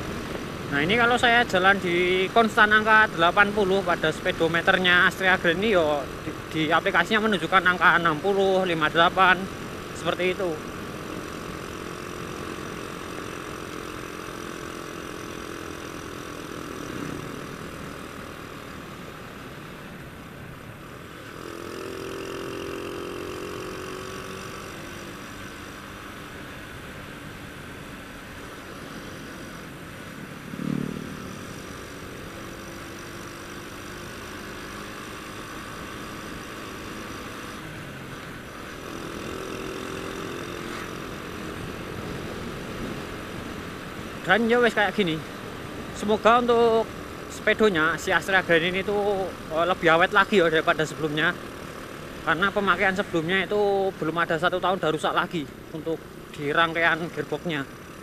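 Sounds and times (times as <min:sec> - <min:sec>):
motorcycle engine cruising: 0:00.0 - 0:58.0
wind and road noise: 0:00.0 - 0:58.0.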